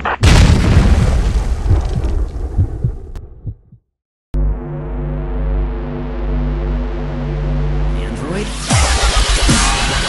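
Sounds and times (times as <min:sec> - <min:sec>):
deep boom with throbbing pulses: 0:00.2 - 0:03.8.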